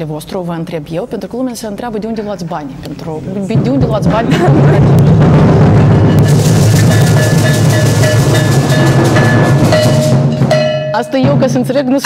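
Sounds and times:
snare drums played fast: 3.5 - 11.8.

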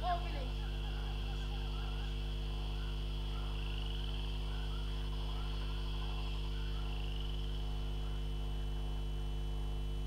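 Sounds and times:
low electrical mains hum: 0.0 - 10.0
thin high whine: 0.0 - 10.0
faint short chirping calls: 0.7 - 8.3.

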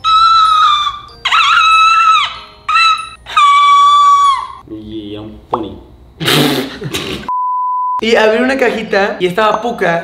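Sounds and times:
puppy whimpering: 0.0 - 4.6.

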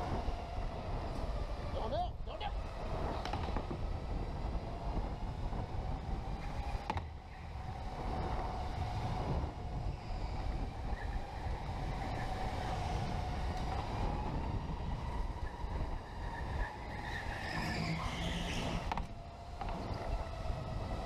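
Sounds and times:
tyres rumbling on track: 0.0 - 21.0.

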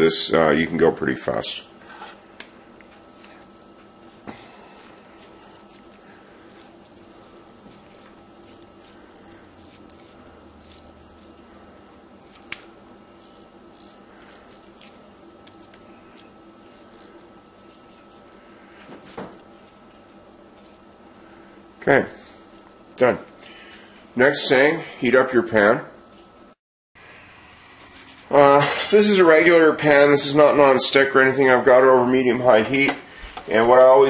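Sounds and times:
steady low hum: 0.0 - 34.0
meat squishing by hand: 1.8 - 23.6.

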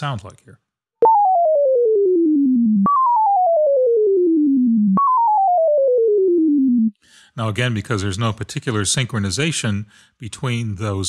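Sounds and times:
synthesizer tone stepping down in pitch: 1.0 - 7.0.

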